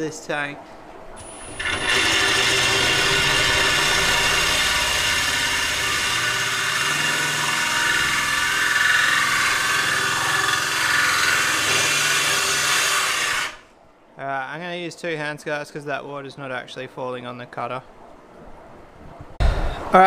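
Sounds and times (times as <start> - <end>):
drill grinding into glass: 1.2 - 13.7.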